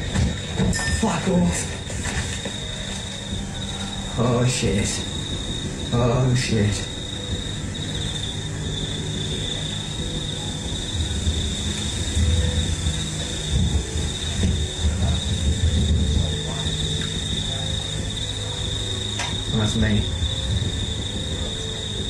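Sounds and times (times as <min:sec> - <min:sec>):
crickets chirring: 0:00.0 - 0:22.0
low rumbling noise: 0:00.0 - 0:22.0.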